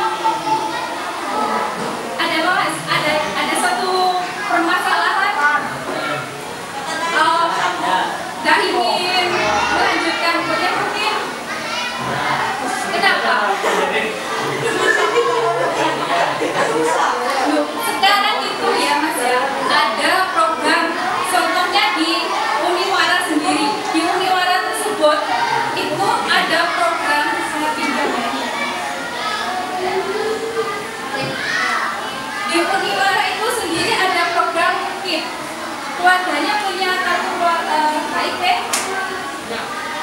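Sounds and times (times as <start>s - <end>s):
children talking and calling out: 0.0s - 40.0s.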